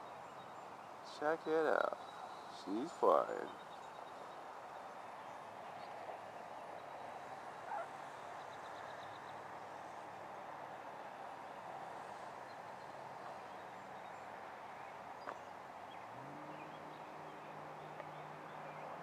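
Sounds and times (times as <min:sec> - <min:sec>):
outdoor background noise: 0:00.0 - 0:19.0.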